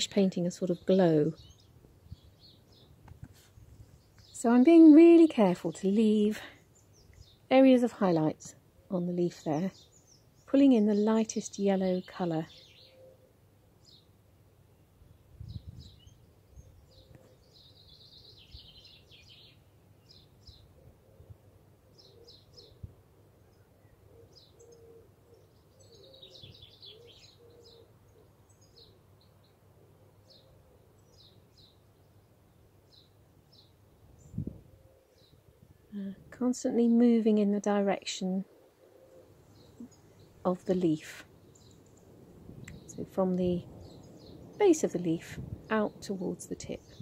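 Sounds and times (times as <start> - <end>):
bird chirps: 8.9 - 14.1, 23.5 - 29.5.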